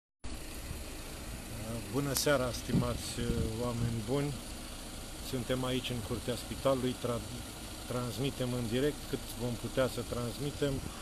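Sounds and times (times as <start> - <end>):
vehicle engine idling: 0.2 - 11.0
man speaking: 1.5 - 4.5, 5.2 - 11.0.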